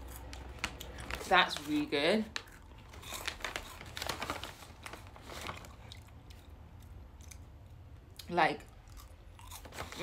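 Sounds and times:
plastic bag crinkling: 0.0s - 6.2s, 9.5s - 10.0s
crunching of rice cakes: 0.0s - 7.6s, 8.8s - 10.0s.

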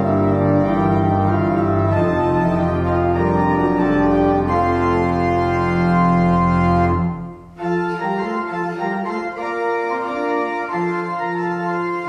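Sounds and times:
church organ chords: 0.0s - 12.0s.

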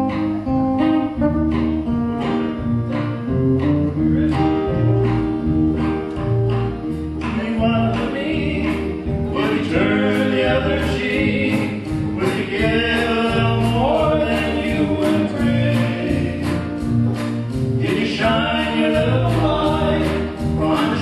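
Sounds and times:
acoustic guitar: 0.0s - 21.0s
men singing gospel together: 7.3s - 16.9s, 17.7s - 21.0s.

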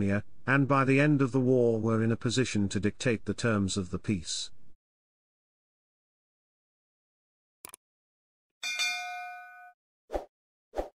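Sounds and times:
notification bell ding: 8.6s - 9.8s.

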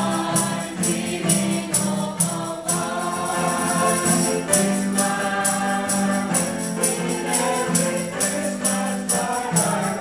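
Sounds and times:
choir singing: 0.0s - 10.0s
tambourine hits: 0.0s - 10.0s.

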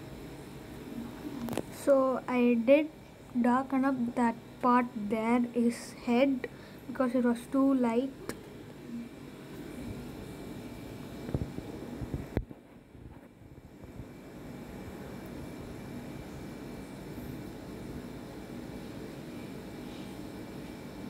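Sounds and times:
fan hum and hiss: 0.0s - 21.0s.

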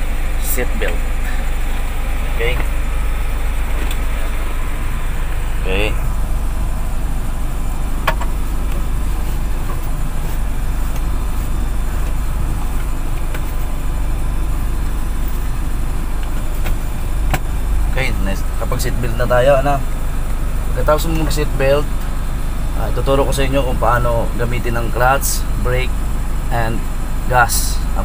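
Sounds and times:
van engine idling: 0.0s - 28.0s.

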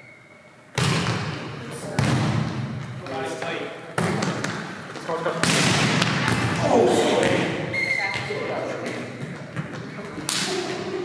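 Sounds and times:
volleyball smack: 0.8s - 1.3s, 5.4s - 6.6s
players shouting: 6.5s - 7.6s
shoe squeak: 7.7s - 8.4s.

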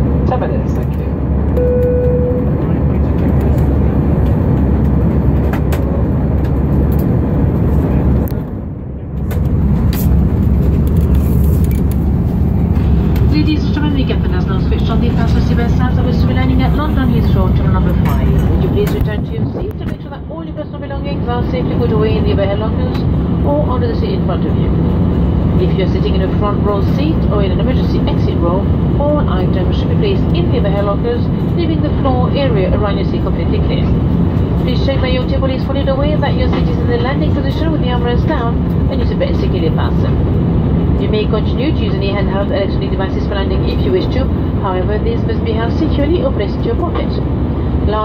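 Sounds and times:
jet engine drone in cabin: 0.0s - 48.0s
cabin announcement: 0.2s - 4.4s, 12.8s - 24.9s.

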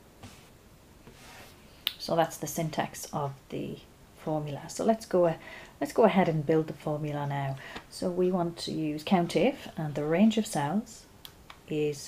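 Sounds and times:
faint hiss: 0.0s - 5.9s.

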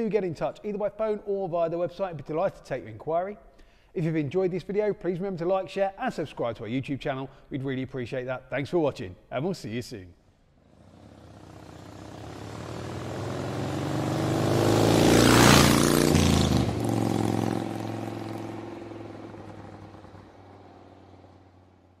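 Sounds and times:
vehicle engine passing by: 10.6s - 22.0s.

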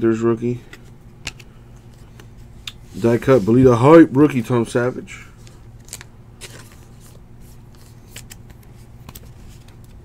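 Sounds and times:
steady low hum: 0.0s - 10.0s
trading cards snapping and rustling: 5.4s - 10.0s.

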